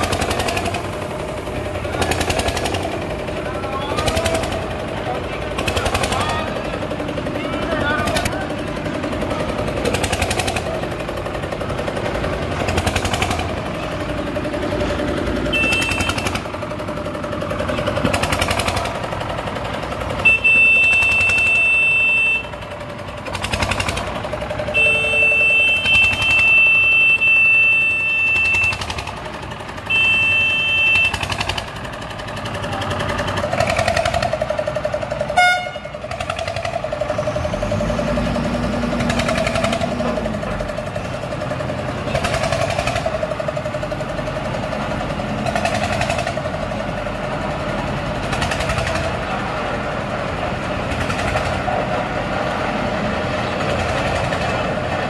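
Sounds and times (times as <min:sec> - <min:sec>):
diesel engine humming and clattering: 0:00.0 - 0:55.0
high horn-like tone: 0:15.5 - 0:16.3, 0:24.7 - 0:28.8, 0:35.4 - 0:35.9.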